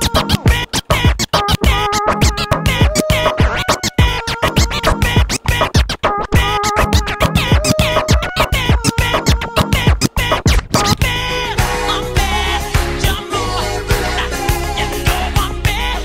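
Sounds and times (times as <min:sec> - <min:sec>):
dj scratching: 0:00.0 - 0:16.0.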